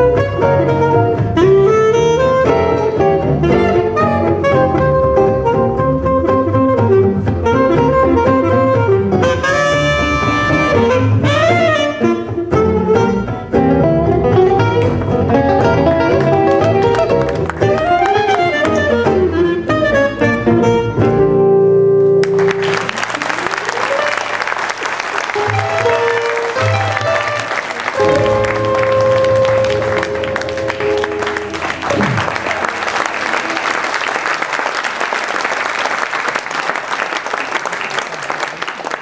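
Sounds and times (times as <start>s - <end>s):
gypsy jazz band playing: 0.0s - 34.4s
audience applause: 16.0s - 18.8s, 22.2s - 39.0s.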